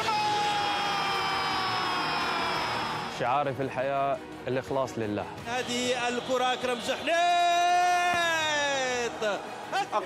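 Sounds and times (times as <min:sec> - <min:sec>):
commentator shouting: 0:00.0 - 0:03.2
stadium crowd noise: 0:00.0 - 0:03.5, 0:05.2 - 0:10.0.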